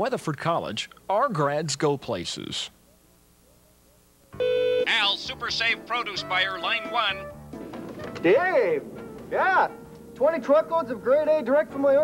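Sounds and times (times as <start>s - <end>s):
phone intercom buzz: 4.4s - 5.3s.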